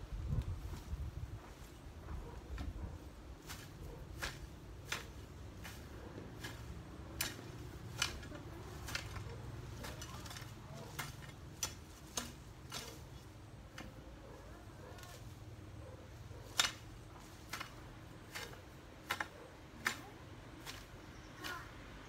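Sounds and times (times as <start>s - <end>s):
hoe chopping into soil: 3.4s - 14.0s, 16.4s - 21.6s.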